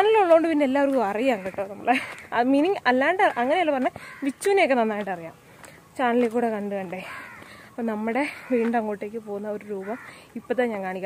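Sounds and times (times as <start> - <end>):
woman talking: 0.0 - 11.0.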